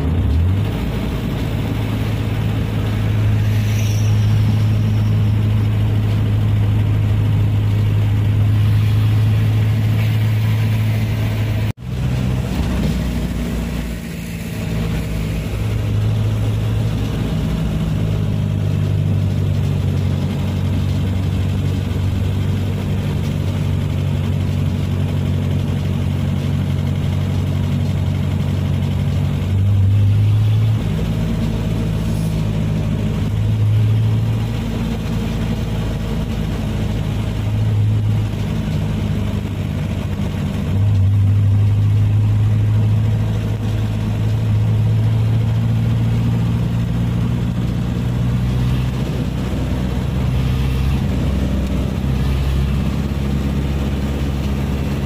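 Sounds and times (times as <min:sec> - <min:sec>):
vehicle engine and road noise: 0:00.0 - 0:55.0.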